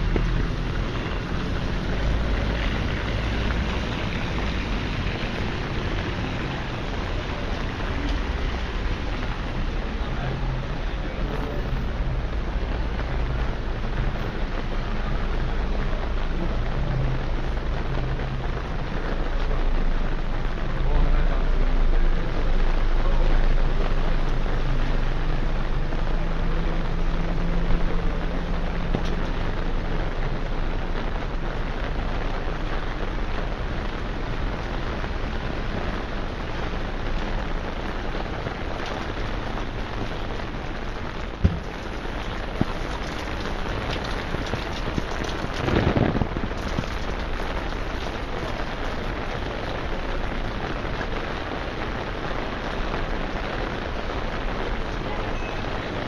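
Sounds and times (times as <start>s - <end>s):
rain falling on street: 0.0s - 56.0s.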